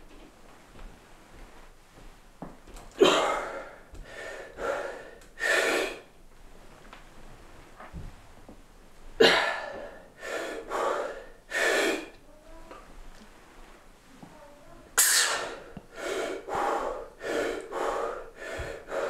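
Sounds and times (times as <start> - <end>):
man breathing hard: 3.0 - 6.1, 9.2 - 12.2, 15.2 - 19.0.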